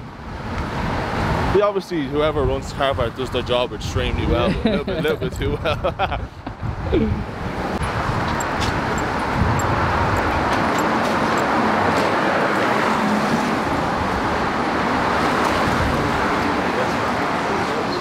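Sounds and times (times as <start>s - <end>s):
street traffic noise: 0.0s - 18.0s.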